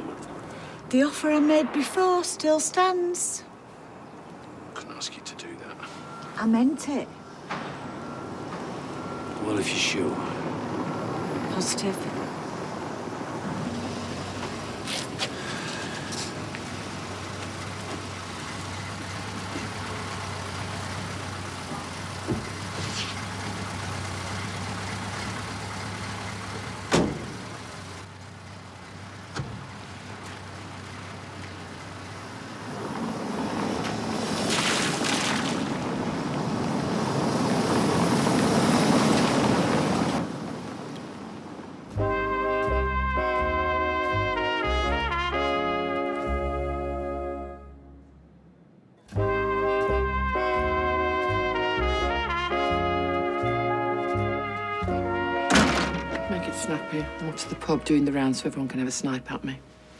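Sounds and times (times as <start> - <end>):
car passing: 0.0 - 59.9
street background noise: 0.0 - 59.9.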